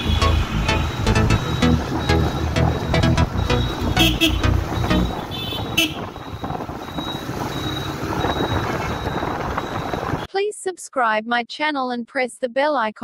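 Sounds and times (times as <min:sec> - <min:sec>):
background music: 0:00.0 - 0:05.3
horn toots: 0:00.0 - 0:06.2
motorcycle engine: 0:00.0 - 0:10.3
wind noise: 0:04.6 - 0:10.3.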